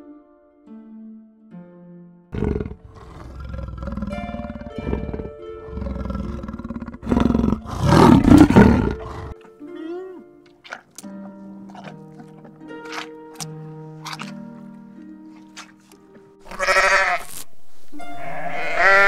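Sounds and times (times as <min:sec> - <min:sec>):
soft background music: 0:00.0 - 0:19.0
large animal growling and roaring: 0:02.3 - 0:09.4.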